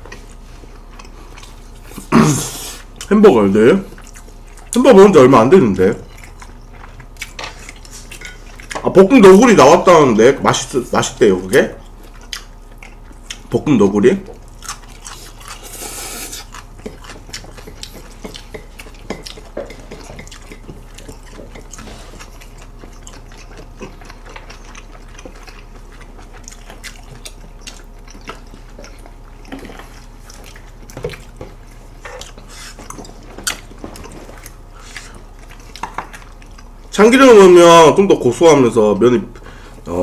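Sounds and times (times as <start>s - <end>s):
wet chewing and slurping: 0.0s - 3.1s, 3.8s - 4.9s, 6.0s - 9.0s, 11.8s - 13.6s, 14.3s - 37.0s
low electrical hum: 0.0s - 40.0s.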